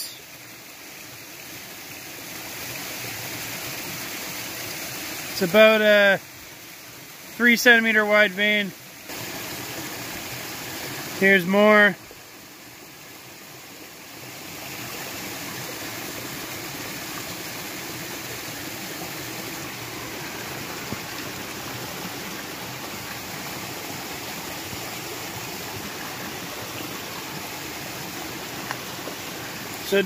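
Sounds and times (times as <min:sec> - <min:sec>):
creek splashing over rocks: 0:00.0 - 0:30.0.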